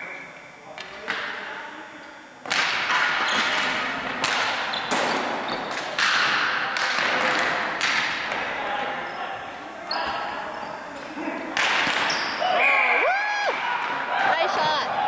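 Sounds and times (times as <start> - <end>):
hockey sticks hitting plastic ball: 2.4 - 9.0, 10.9 - 12.3.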